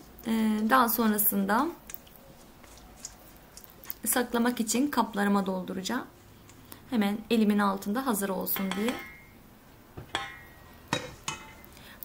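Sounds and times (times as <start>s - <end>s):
pot clinking: 8.5s - 9.4s, 10.0s - 11.8s
steel cookware knocking: 8.6s - 9.3s, 10.0s - 11.7s.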